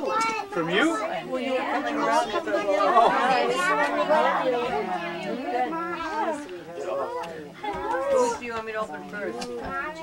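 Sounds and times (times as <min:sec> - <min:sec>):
overlapping conversation: 0:00.0 - 0:10.0.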